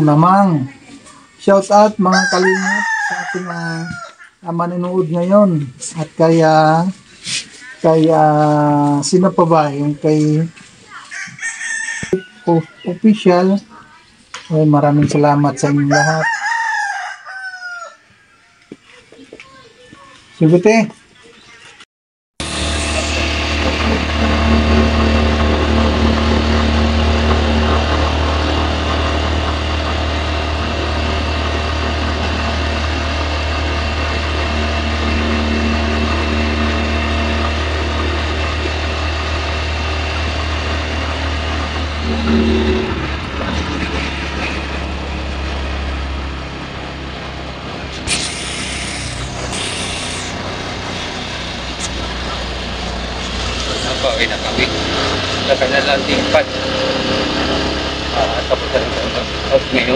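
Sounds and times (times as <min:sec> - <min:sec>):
vehicle engine and road noise: 0:22.4 - 0:59.9
short bursts of hiss: 0:48.1 - 0:50.4.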